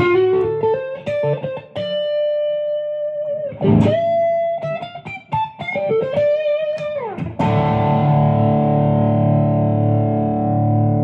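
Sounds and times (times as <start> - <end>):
distorted electric guitar: 0.0 - 11.0.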